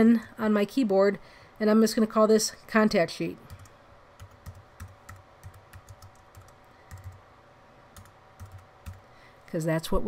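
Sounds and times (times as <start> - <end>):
faint keyboard typing: 3.4 - 7.2, 7.9 - 9.1.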